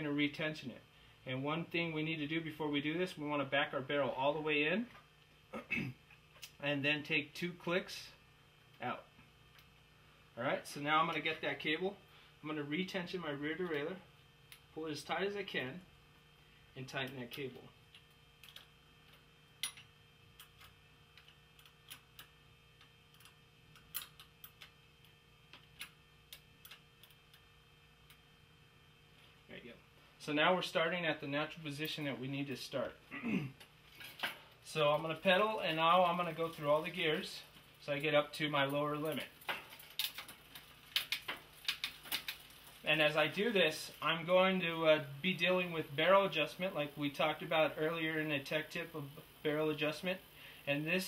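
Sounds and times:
bicycle chain and derailleur clicking: 0:38.9 - 0:43.9.

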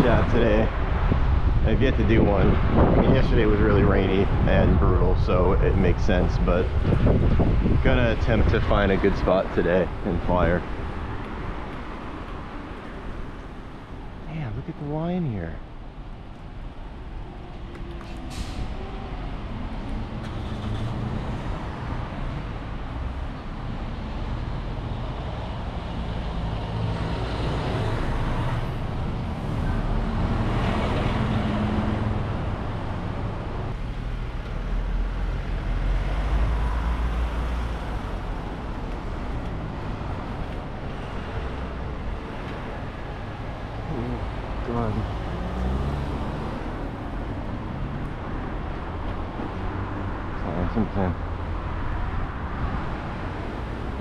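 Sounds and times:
steady low rumble: 0:00.0 - 0:10.6
cars passing close by: 0:00.0 - 0:54.0.

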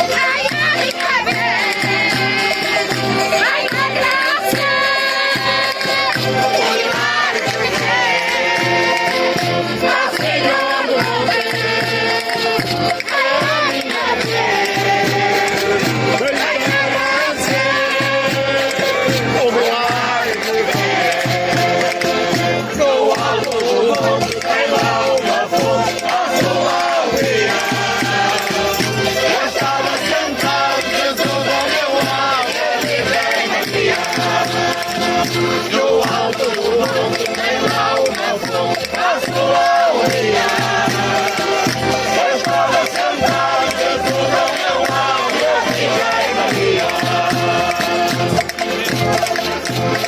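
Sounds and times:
button accordion: 0:00.0 - 0:50.0
group singing in chorus: 0:00.0 - 0:50.0.

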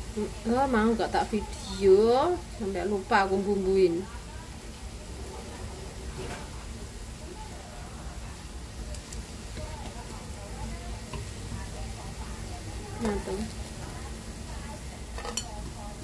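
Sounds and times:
patties sizzling in oil: 0:00.0 - 0:16.0.

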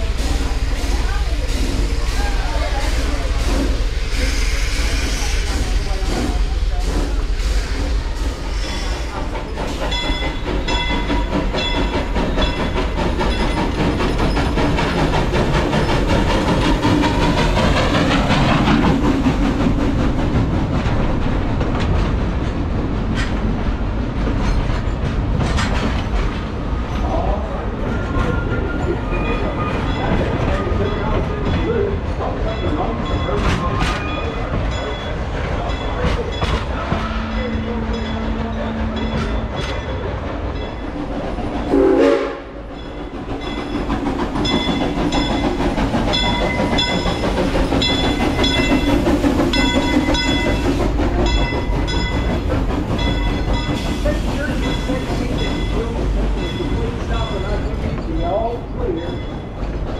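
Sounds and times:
steam train rumbling: 0:00.0 - 0:59.9.

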